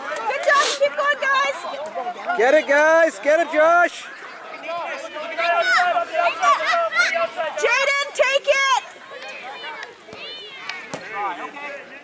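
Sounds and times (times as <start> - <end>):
people shouting and cheering: 0.0 - 12.0.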